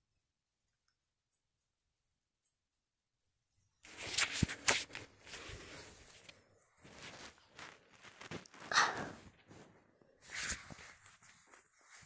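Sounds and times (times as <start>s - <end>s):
bedding rustling: 3.6s - 12.0s.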